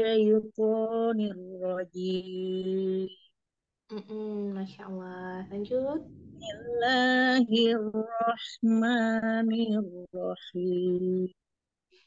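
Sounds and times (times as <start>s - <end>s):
woman chanting verses: 5.0s - 8.0s.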